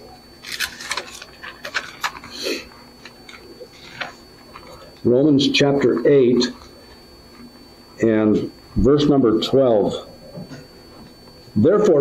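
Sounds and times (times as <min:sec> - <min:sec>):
paper pages rustling: 0:00.4 - 0:02.4, 0:03.0 - 0:04.9.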